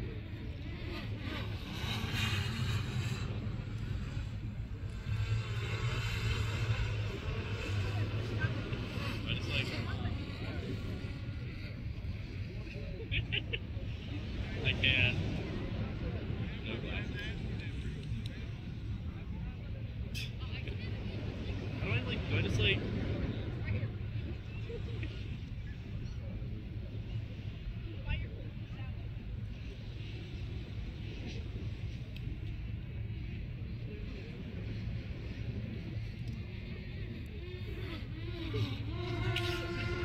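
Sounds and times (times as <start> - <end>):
people talking faintly: 0.0 - 40.0
steady low rumble: 0.0 - 40.0.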